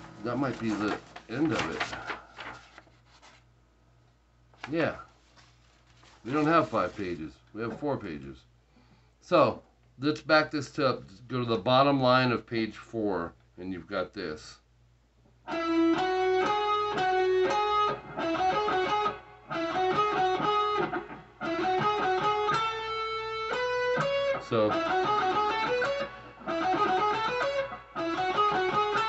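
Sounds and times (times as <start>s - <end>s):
electric guitar solo: 15.5s - 29.0s.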